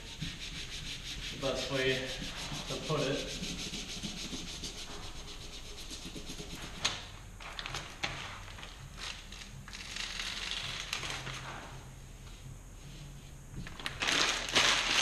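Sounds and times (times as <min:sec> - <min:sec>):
hand rubbing transfer paper: 0:00.0 - 0:07.0
transfer paper crinkling: 0:13.8 - 0:15.0.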